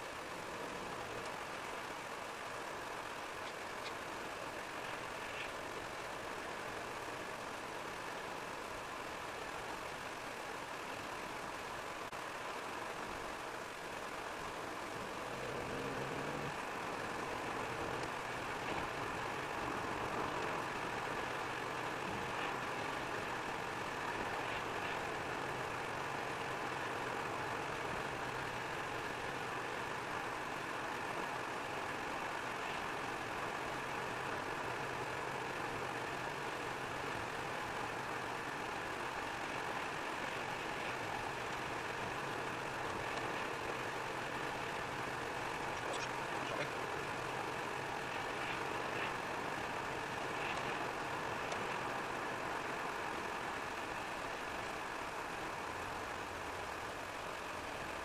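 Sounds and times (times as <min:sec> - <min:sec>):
car cabin road noise: 0:00.0 - 0:58.0
faint ticks: 0:00.4 - 0:02.1, 0:03.1 - 0:06.8, 0:14.2 - 0:52.5.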